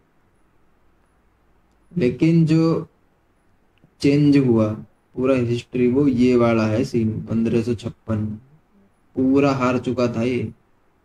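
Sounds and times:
man's voice: 4.0 - 8.5, 9.2 - 10.6.

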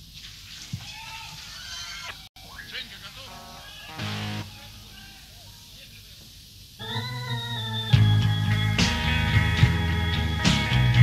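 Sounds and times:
voices: 2.4 - 7.1.

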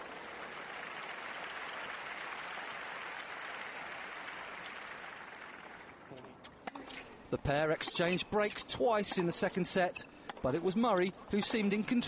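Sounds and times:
crowd applauding: 0.0 - 6.0.

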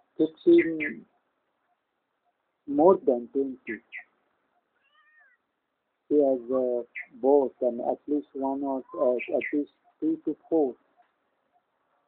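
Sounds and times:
kitten meowing: 4.9 - 5.3.

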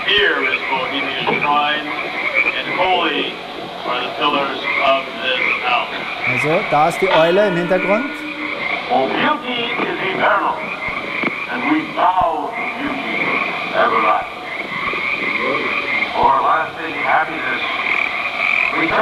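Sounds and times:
frogs croaking: 0.0 - 19.0
high pulsing frog trill: 4.0 - 9.0.

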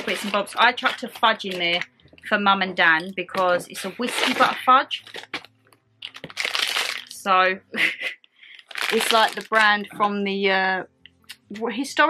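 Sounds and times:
plastic packet crinkling: 0.0 - 1.8, 3.0 - 7.3, 8.5 - 10.0.

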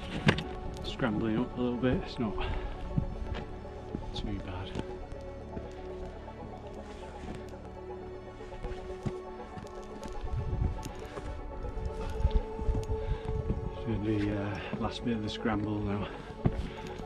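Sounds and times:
taps and scuffs on rock: 0.0 - 5.0, 16.0 - 17.0
background music with held notes: 0.0 - 17.0
wind gusts on microphone: 10.2 - 14.1.

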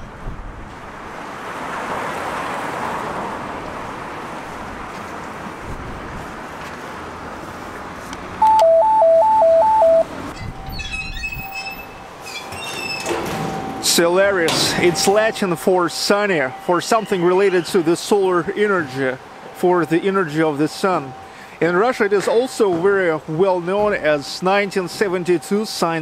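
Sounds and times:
outdoor street noise hiss: 0.0 - 26.0
intercom two-note electronic warble: 8.4 - 10.1
short beeps: 8.4 - 12.0.

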